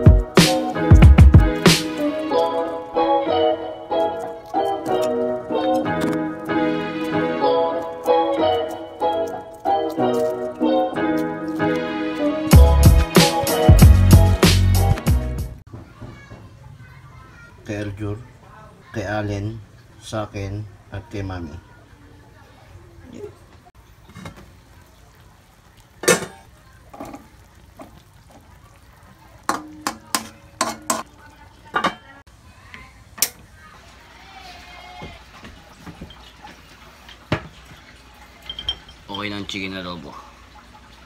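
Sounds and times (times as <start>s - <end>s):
metal utensil clinking on wok: 29.5s - 31.1s, 38.4s - 39.1s.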